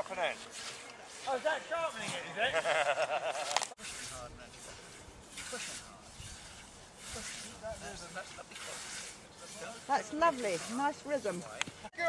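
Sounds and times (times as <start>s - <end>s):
scythe swishing through grass: 0.0s - 2.2s, 3.2s - 11.9s.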